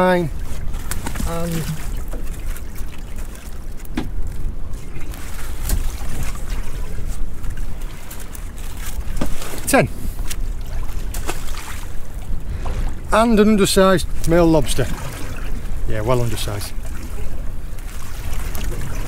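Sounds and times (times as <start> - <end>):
boat noise: 0.0 - 19.0
wind rumble: 3.6 - 19.0.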